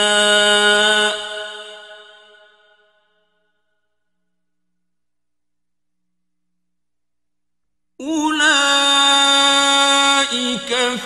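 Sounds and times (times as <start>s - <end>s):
man reciting in long held note: 0.0s - 2.5s, 8.0s - 11.0s
echo of voice: 0.0s - 3.8s, 8.0s - 11.0s.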